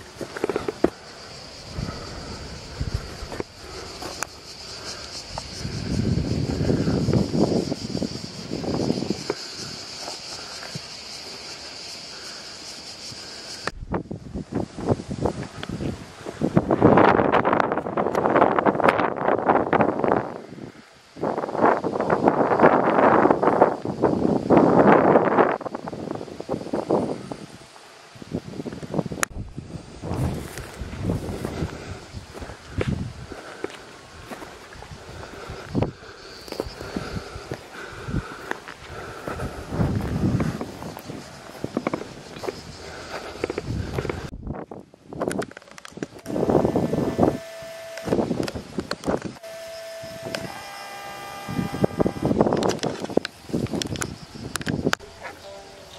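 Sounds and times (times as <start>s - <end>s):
wind buffeting microphone: 0.0s - 11.2s, 13.6s - 49.4s, 50.1s - 55.3s
grass rustling: 29.3s - 55.9s.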